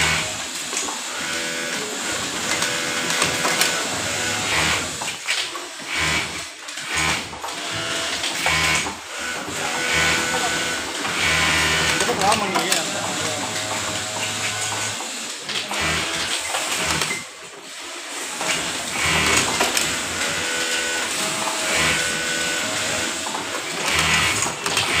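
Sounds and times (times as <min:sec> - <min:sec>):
sewing machine stitching fabric: 0:00.0 - 0:25.0.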